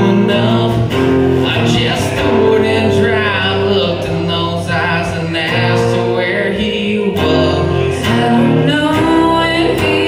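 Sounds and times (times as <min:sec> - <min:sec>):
acoustic guitar: 0:00.0 - 0:10.0
person singing: 0:00.0 - 0:10.0.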